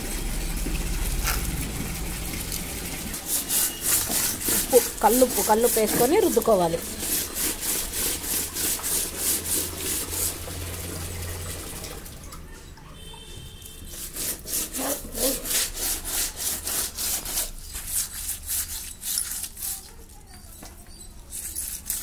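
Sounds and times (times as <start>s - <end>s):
fish rasping on concrete: 3.1s - 10.7s, 13.6s - 22.0s.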